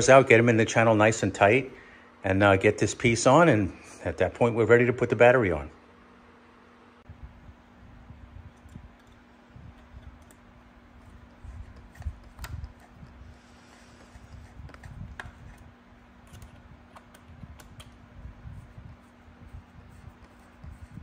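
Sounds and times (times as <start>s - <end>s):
faint clicks and scrapes of wiring: 8.6s - 18.0s.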